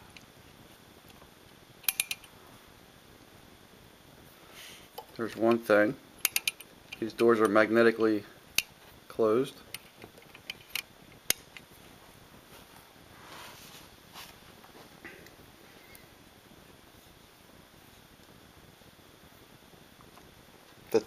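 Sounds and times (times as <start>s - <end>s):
faint handling rustle: 11.6s - 16.2s.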